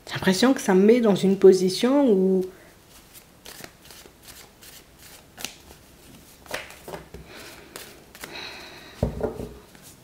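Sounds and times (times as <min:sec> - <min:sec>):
cards being shuffled by hand: 0:02.9 - 0:08.5.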